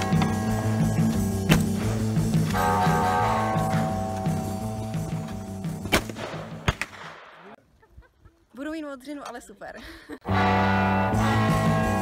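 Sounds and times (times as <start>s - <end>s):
rifle shots: 5.8s - 7.5s.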